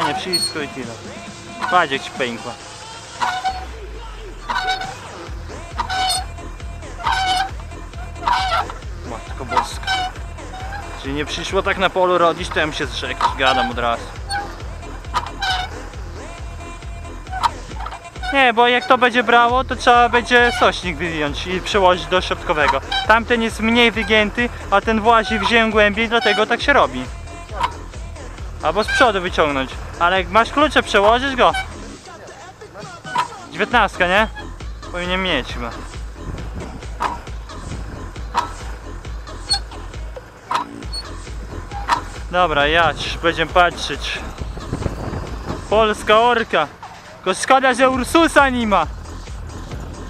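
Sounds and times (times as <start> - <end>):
tractor diesel engine under load: 0.0 - 50.0.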